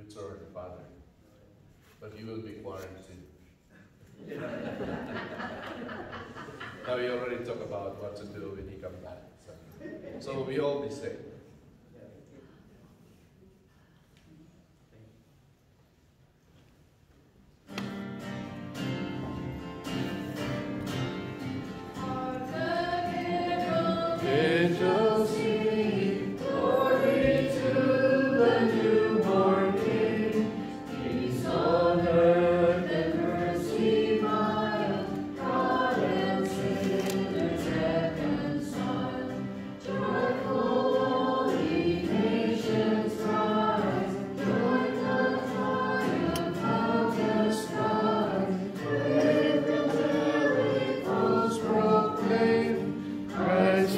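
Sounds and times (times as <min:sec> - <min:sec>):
church choir singing a hymn: 0:04.4 - 0:08.5, 0:19.2 - 0:53.9.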